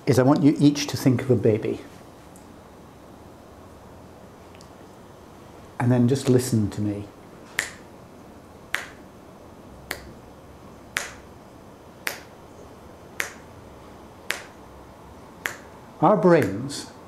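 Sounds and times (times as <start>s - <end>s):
man snapping fingers: 7.5s - 7.9s, 8.7s - 9.0s, 9.9s - 10.2s, 10.9s - 11.3s, 12.0s - 12.4s, 13.2s - 13.5s, 14.3s - 14.6s, 15.4s - 15.7s, 16.4s - 16.6s.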